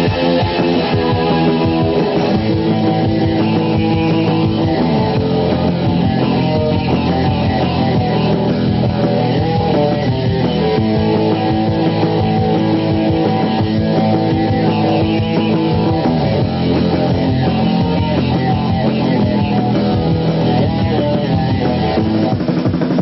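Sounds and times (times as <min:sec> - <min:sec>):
electric guitar: 0:00.0 - 0:23.0
loud rock band: 0:00.0 - 0:23.0.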